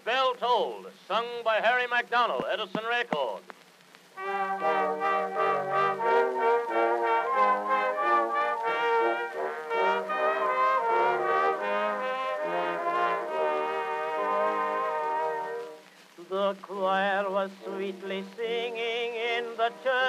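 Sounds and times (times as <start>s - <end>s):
brass-led orchestra playing: 4.2s - 15.8s.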